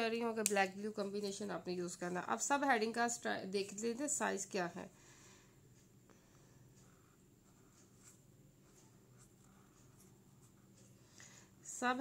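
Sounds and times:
marker scratching on paper: 0:06.8 - 0:10.9.

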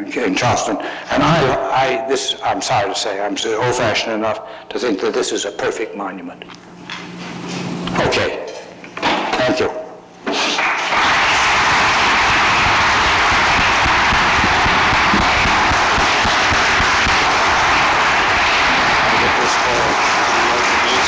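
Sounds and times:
audience applauding: 0:10.5 - 0:21.0.

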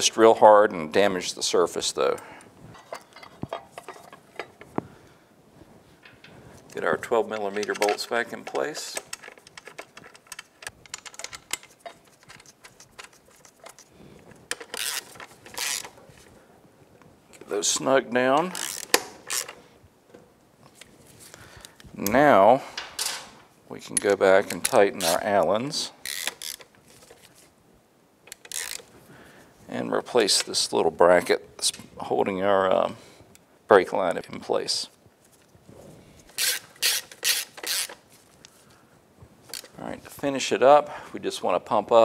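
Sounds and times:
hand ratchet clicking: 0:07.3 - 0:13.9, 0:14.5 - 0:16.0, 0:18.4 - 0:19.6, 0:26.0 - 0:26.7, 0:28.3 - 0:28.9, 0:36.4 - 0:38.0
rasping bursts of tool noise: 0:36.4 - 0:38.0.

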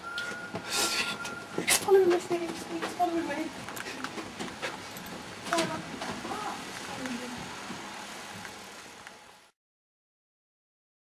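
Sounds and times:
steady hiss: 0:00.1 - 0:09.5.

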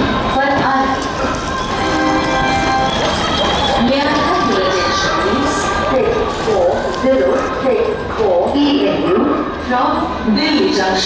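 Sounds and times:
public address announcement: 0:00.0 - 0:11.0.

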